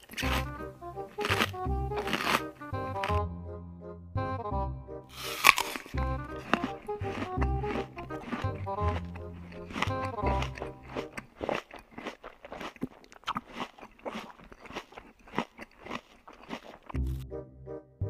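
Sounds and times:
crunchy snack being chewed: 0:00.0 - 0:03.2, 0:05.1 - 0:17.2
background music with bass line: 0:00.2 - 0:11.1, 0:17.0 - 0:18.0.

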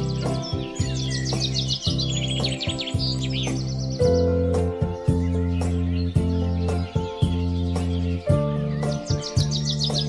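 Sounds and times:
music of sustained low notes: 0:00.0 - 0:10.0
songbirds singing trills: 0:00.0 - 0:10.0.

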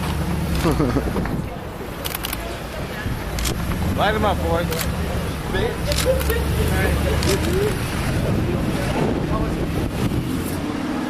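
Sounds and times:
traffic noise: 0:00.0 - 0:11.0
voices: 0:00.5 - 0:10.8.

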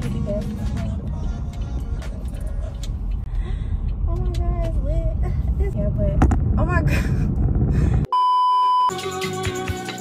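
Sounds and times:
car interior rumble: 0:00.0 - 0:08.1
music playing: 0:08.9 - 0:10.0.

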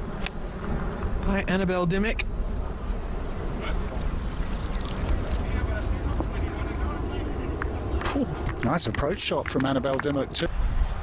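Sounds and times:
wind rumble on microphone: 0:00.0 - 0:11.0
faint scattered sounds: 0:02.6 - 0:10.5.

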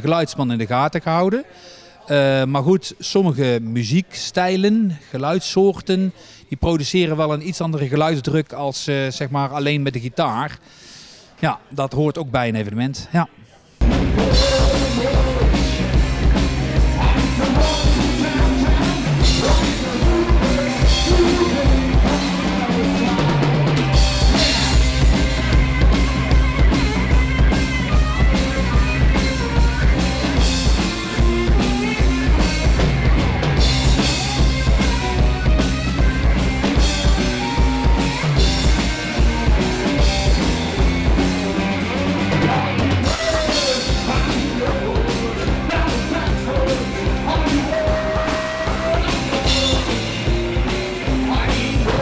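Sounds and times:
bass drum and snare beat: 0:13.8 - 0:52.0
electric guitar: 0:13.8 - 0:52.0
live rock band playing: 0:13.8 - 0:52.0.

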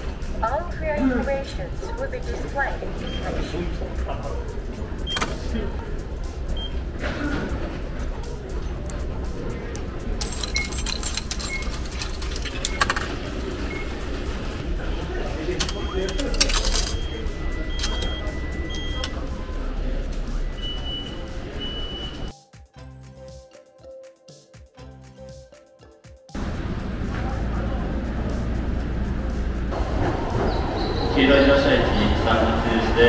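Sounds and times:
busy crowd chatter: 0:00.0 - 0:22.3, 0:26.4 - 0:33.0
coins clicking and rattling: 0:09.8 - 0:13.7, 0:15.5 - 0:18.3
short electronic beeps: 0:15.6 - 0:19.6, 0:20.4 - 0:22.3.

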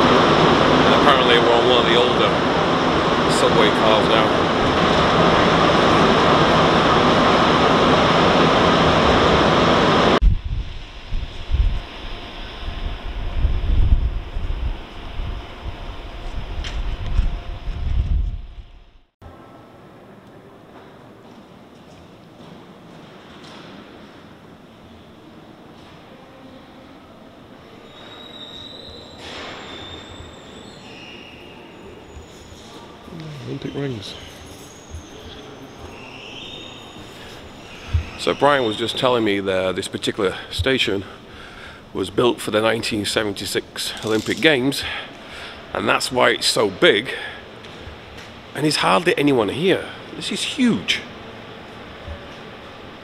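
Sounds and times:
subway train running: 0:00.0 - 0:53.0.

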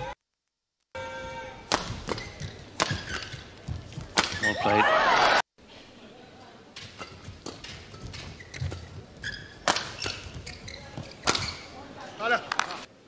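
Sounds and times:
racket hitting shuttlecock: 0:01.7 - 0:04.6, 0:06.8 - 0:11.7
shoe squeaks: 0:02.1 - 0:03.4, 0:04.3 - 0:04.7, 0:07.9 - 0:11.8.

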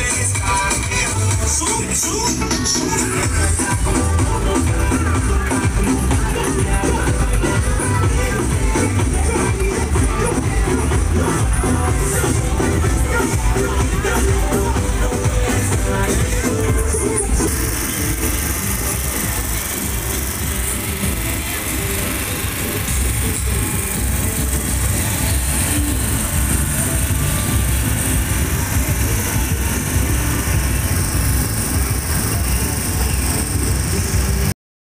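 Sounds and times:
loud bass-heavy music: 0:00.0 - 0:34.6
vehicle engine running: 0:00.0 - 0:34.6.

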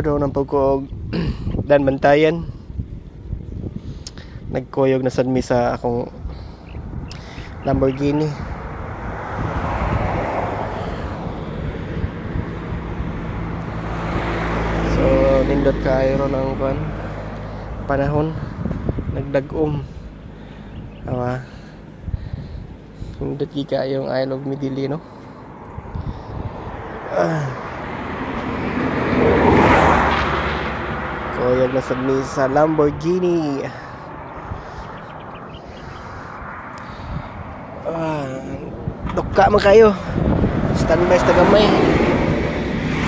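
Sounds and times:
engine hum: 0:02.5 - 0:43.0
vehicle passing: 0:06.1 - 0:43.0.

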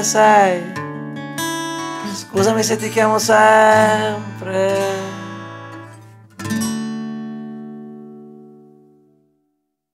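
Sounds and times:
acoustic guitar chord ringing: 0:00.0 - 0:09.5.

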